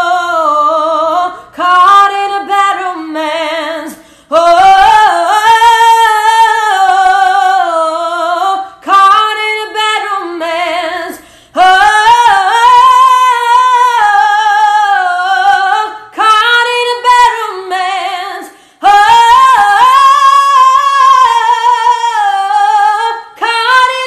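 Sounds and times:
woman singing unaccompanied: 0.0s - 24.0s.

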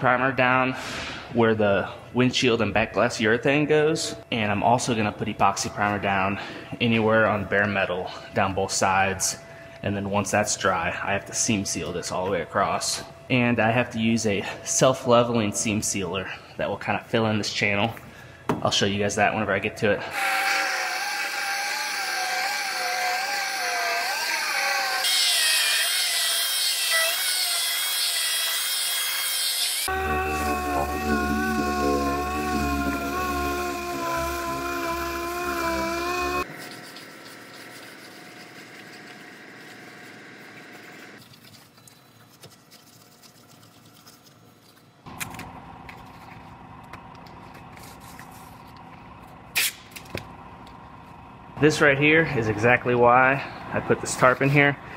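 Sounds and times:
angle grinder grinding metal: 20.2s - 36.5s.

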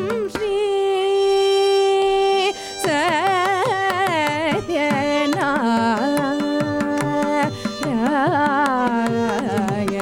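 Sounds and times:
mridangam strokes: 0.0s - 10.0s
violin: 0.0s - 10.0s.

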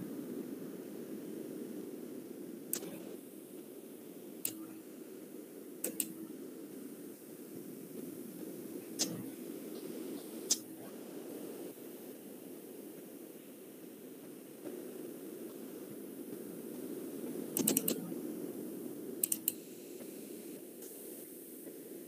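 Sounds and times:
steady low hum: 0.0s - 22.0s
keyboard key clicks: 17.6s - 18.1s.

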